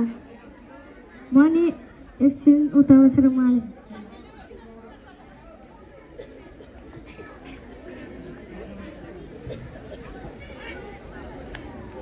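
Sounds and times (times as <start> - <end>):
faint voices chattering: 0.0 - 12.0.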